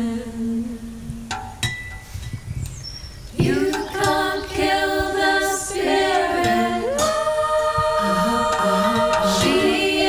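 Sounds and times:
faint background noise: 0.0 - 10.0
high bird chirp: 2.2 - 4.0.

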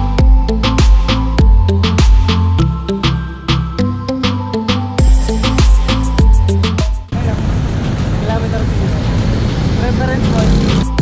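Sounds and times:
music with heavy beat: 0.0 - 7.1, 10.3 - 11.0
road traffic noise: 5.2 - 11.0.

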